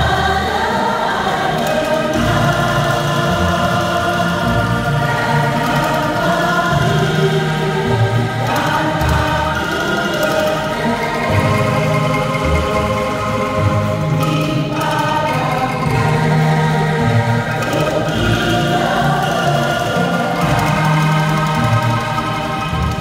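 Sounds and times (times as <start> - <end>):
bamboo angklung ensemble playing: 0.0 - 23.0.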